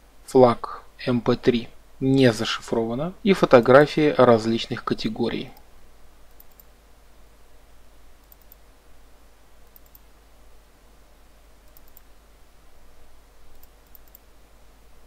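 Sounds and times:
low steady hum: 0.0 - 15.0
computer mouse double-clicks: 6.3 - 6.7, 8.2 - 8.6, 9.6 - 10.0, 11.7 - 12.1, 13.5 - 14.3.

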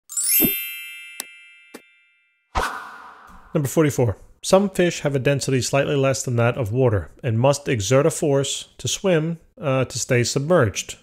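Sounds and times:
bright ringing chime: 0.1 - 2.5
rising sweep: 2.6 - 3.7.

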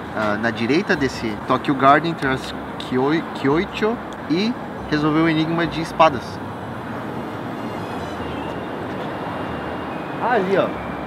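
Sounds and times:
city traffic rumble: 0.0 - 11.0.

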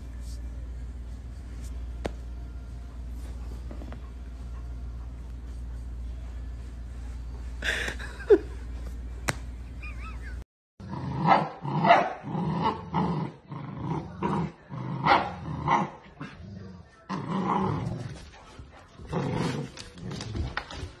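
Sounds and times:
dogs play growling: 10.8 - 20.9
dogs barking: 11.2 - 12.3.

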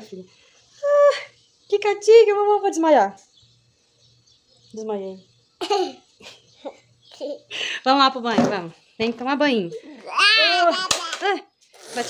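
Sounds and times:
child vocalising: 10.0 - 11.2.

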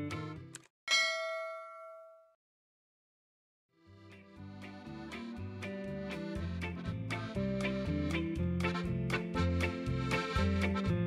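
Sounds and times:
background music: 0.0 - 0.5, 4.1 - 11.0
notification bell ding: 0.9 - 2.3.

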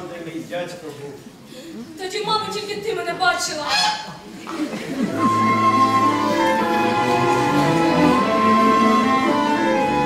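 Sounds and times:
orchestra playing: 4.9 - 10.0.

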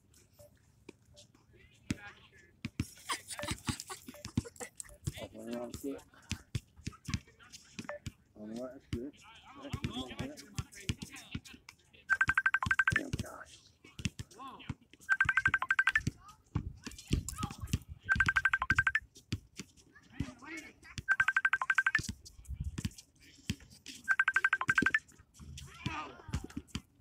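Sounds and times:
phone ringing with electronic trill: 12.1 - 13.1, 15.1 - 16.0, 18.1 - 19.0, 21.1 - 22.0, 24.1 - 25.0.

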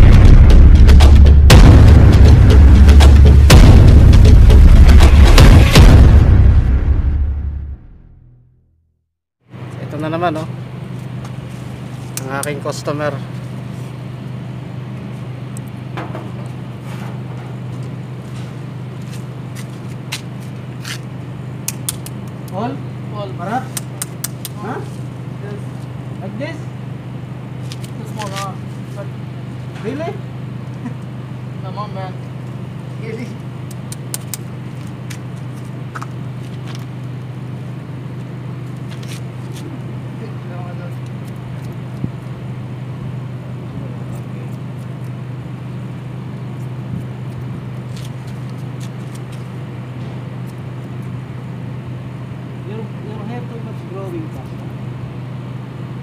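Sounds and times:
air-conditioner hum: 9.6 - 56.0
scissors snipping hair: 21.7 - 22.6, 23.8 - 24.6, 33.6 - 34.5.

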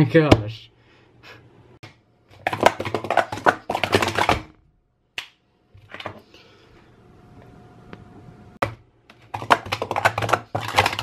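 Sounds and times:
plastic cups clattering: 2.3 - 4.5, 9.1 - 11.0.

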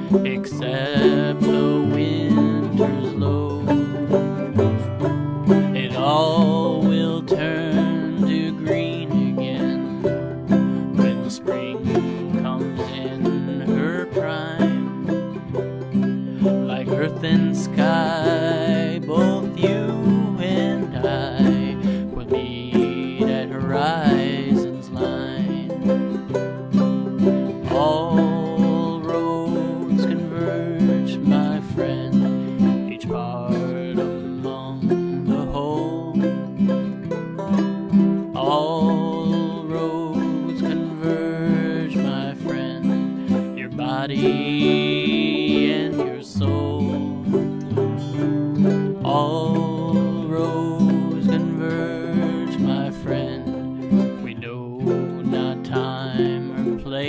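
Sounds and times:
banjo: 0.0 - 57.0
guitar: 0.0 - 57.0
ukulele: 0.0 - 57.0.

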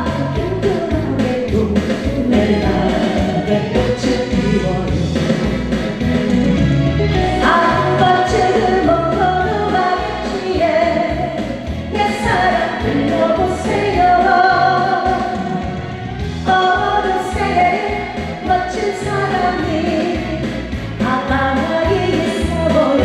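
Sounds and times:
woman singing into a microphone: 0.0 - 5.6, 7.2 - 23.0
backing track with steady beat: 0.0 - 23.0.

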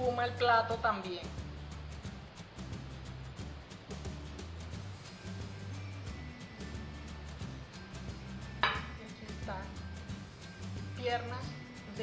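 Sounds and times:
background music with bass line: 0.0 - 12.0
plate clinking on stone counter: 8.6 - 8.9.

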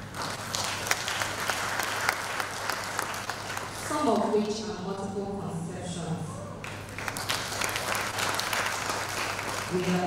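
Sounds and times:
audience applauding: 0.0 - 3.8, 6.7 - 10.0
woman's voice: 3.8 - 6.4, 9.7 - 10.0.

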